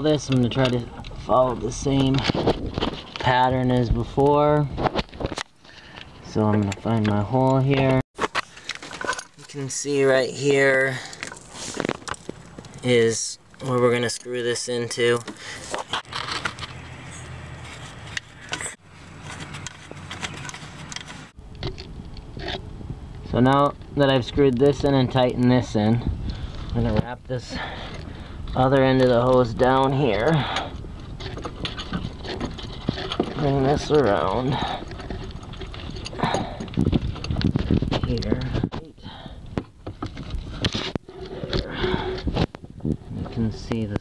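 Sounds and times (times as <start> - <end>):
rustling handling noise: 4.6 - 22.6
metal fitting scraping and clicking: 13.7 - 21.8.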